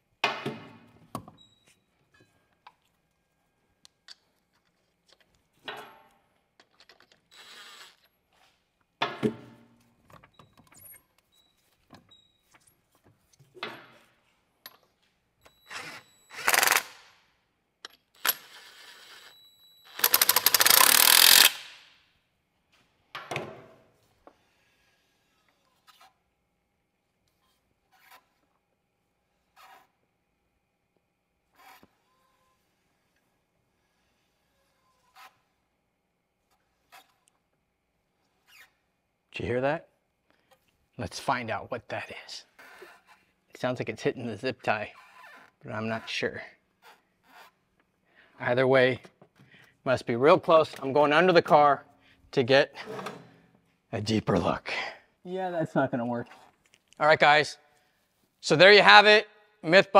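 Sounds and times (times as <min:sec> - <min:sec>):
impact wrench bursts: 0:15.6 - 0:17.1, 0:18.2 - 0:21.9.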